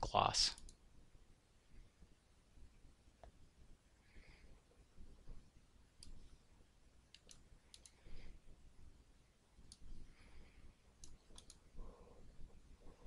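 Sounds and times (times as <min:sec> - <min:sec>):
computer mouse clicks: 0:00.5 - 0:00.8, 0:06.0 - 0:06.3, 0:07.1 - 0:08.1, 0:09.6 - 0:10.0, 0:11.0 - 0:11.7.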